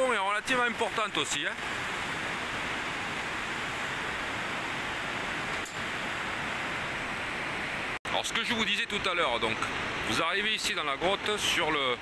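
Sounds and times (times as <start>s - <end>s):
river rushing in cave: 0.0s - 12.0s.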